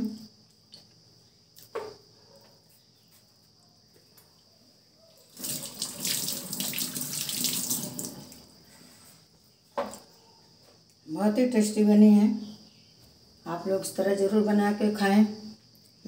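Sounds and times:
water running from tap: 5.3 - 8.5.

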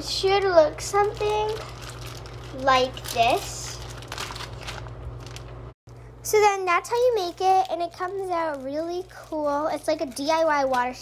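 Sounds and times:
low steady hum: 0.0 - 11.0
plastic bags crinkling: 0.3 - 5.8, 7.2 - 11.0.

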